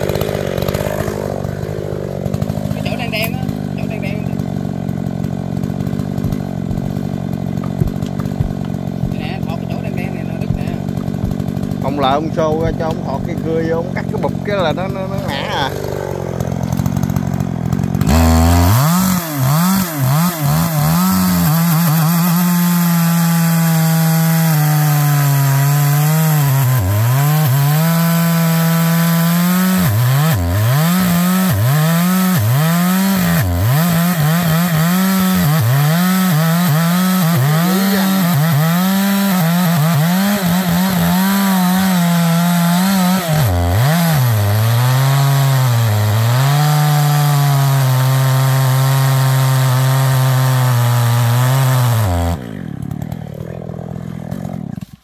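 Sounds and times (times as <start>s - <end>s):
chainsaw cutting hard wood: 0.0s - 55.0s.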